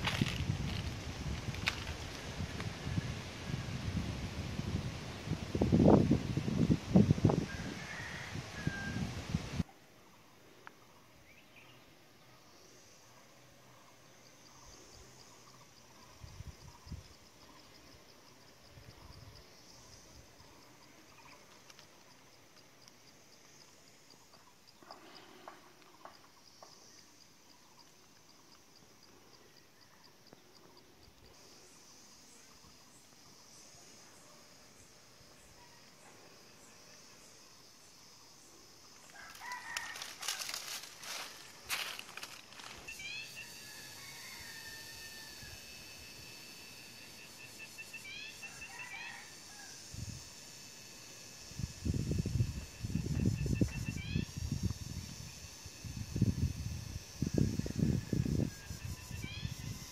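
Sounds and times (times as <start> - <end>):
insect chirping: 0.0 - 59.9
rustling: 39.1 - 42.9
bird long high call: 42.8 - 45.7.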